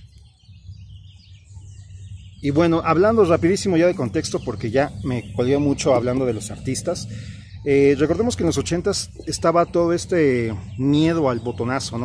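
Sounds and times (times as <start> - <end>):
faint birds chirping: 0.0 - 12.0
low steady rumble: 0.0 - 12.0.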